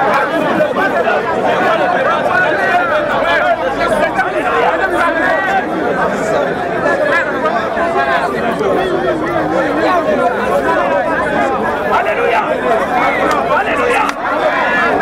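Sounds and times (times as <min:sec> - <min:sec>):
crowd of overlapping voices: 0:00.0 - 0:15.0.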